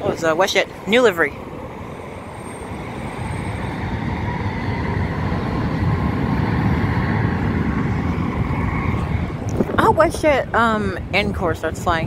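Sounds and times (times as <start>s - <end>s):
faint high whine: 0.0s - 11.0s
road traffic rumble: 0.0s - 12.0s.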